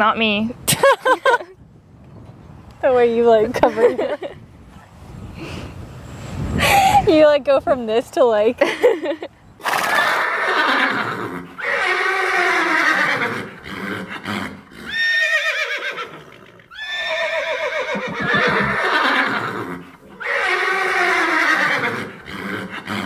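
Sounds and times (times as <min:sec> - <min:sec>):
horse whinnying: 0:09.6 - 0:23.0.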